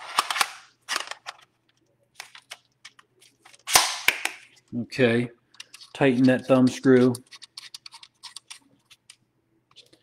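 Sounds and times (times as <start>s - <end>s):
plastic parts clicking and clacking: 5.5s - 10.0s.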